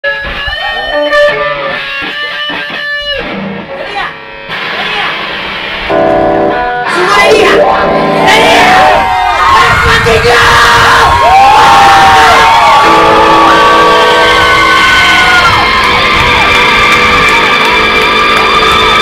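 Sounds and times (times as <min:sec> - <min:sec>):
drums: 0:00.0 - 0:19.0
electric guitar: 0:00.0 - 0:19.0
crowd shouting: 0:06.9 - 0:19.0.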